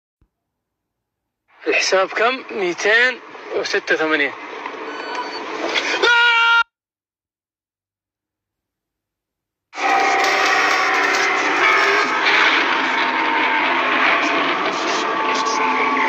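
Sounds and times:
loud distorted scream: 5.8s - 6.7s, 9.8s - 16.0s.

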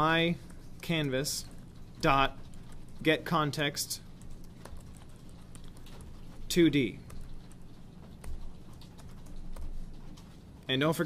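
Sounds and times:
keyboard typing: 0.0s - 10.7s.

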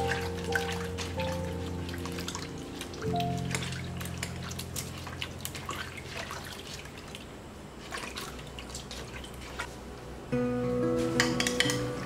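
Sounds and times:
small splashes in water: 2.0s - 9.7s.

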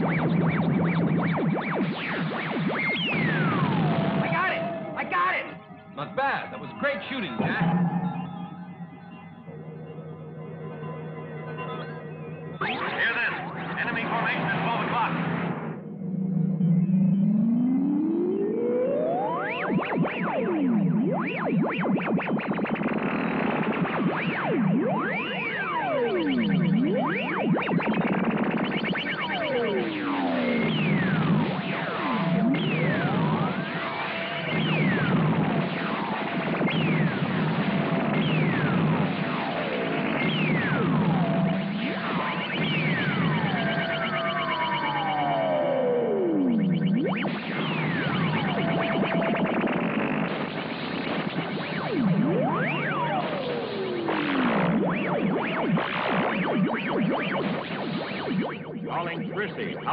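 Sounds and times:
electronic synthesizer music: 0.0s - 59.9s.

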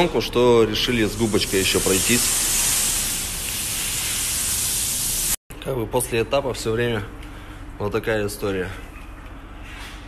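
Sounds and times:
pressure washer spraying water: 0.9s - 5.4s.

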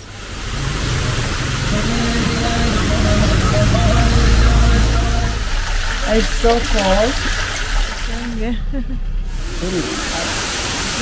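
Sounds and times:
waterfall rushing: 0.0s - 8.4s, 9.3s - 11.0s.

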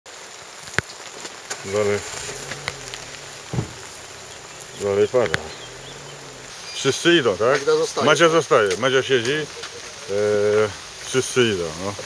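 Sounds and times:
rain falling steadily: 0.1s - 12.0s.

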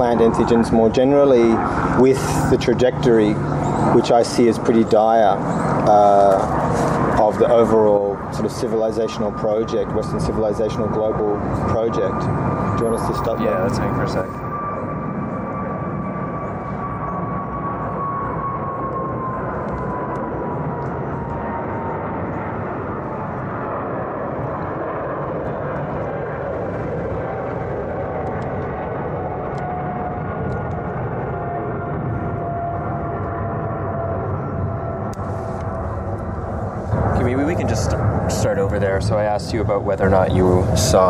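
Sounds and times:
aircraft engine rumble and whine: 0.0s - 41.0s
lower engine whine: 0.0s - 41.0s.

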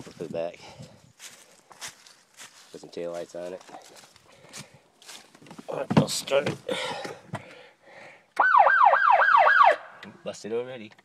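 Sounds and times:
electronic siren wailing: 8.4s - 9.9s.

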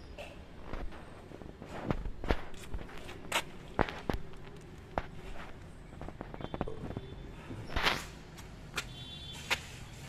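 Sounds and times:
footsteps on concrete: 1.6s - 6.7s, 7.9s - 9.7s.

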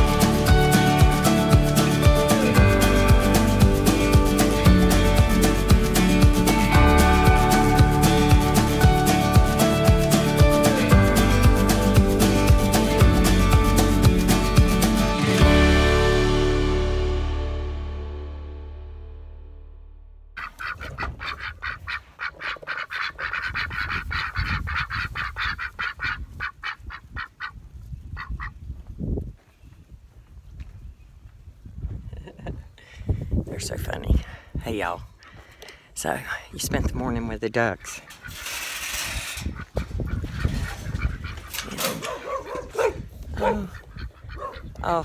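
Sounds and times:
ducks quacking: 20.4s - 27.6s, 37.6s - 45.0s
wind rumbling on microphone: 20.6s - 22.1s, 23.1s - 35.2s, 38.2s - 45.0s
dog barking: 41.9s - 44.6s.

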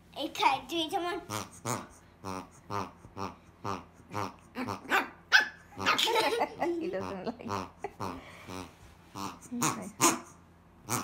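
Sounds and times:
squeaky pig toy grunting: 1.2s - 5.1s, 5.7s - 6.3s, 7.0s - 11.0s.

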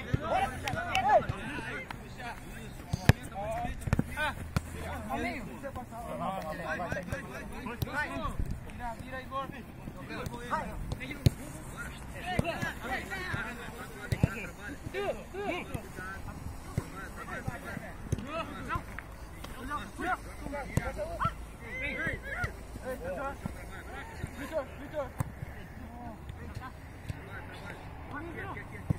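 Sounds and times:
players shouting: 0.0s - 1.8s, 19.5s - 24.8s.

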